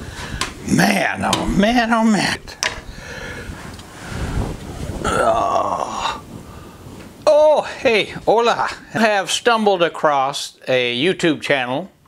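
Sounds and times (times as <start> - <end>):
low rustling: 0.0 - 9.8
man groaning: 5.0 - 6.2.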